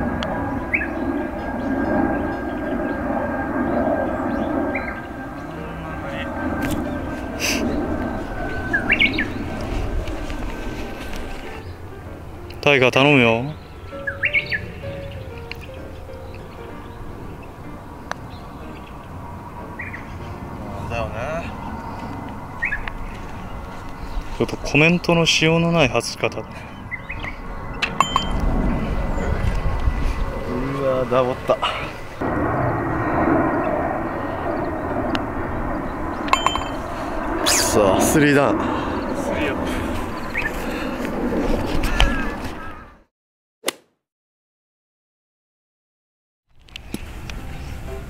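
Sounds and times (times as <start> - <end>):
rumbling background noise: 0.0 - 13.9, 14.6 - 42.3
birds chirping: 0.0 - 43.0.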